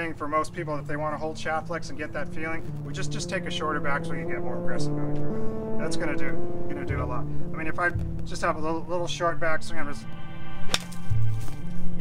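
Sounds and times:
background music: 0.0 - 12.0
golf club striking ball: 10.7 - 11.0.

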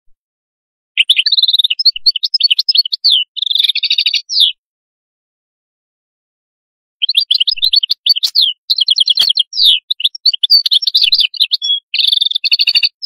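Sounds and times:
goldfinch twittering song: 1.0 - 4.6, 7.0 - 13.0.

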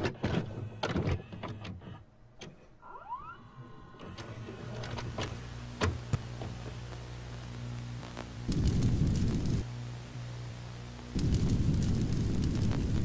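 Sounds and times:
rising whine: 2.8 - 13.0
low motor hum: 3.5 - 13.0.

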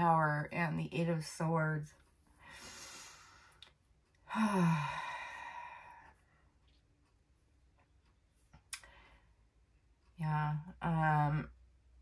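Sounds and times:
woman breathing in: 2.3 - 3.7, 4.3 - 6.3
woman sighing: 4.3 - 6.0.

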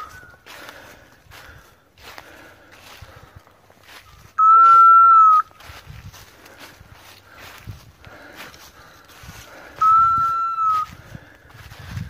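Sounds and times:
dog whistle blast: 4.4 - 5.4, 9.8 - 10.8.

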